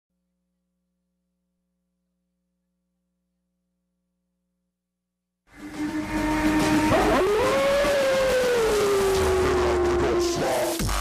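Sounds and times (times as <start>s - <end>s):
wolf howl: 5.7s - 10.8s.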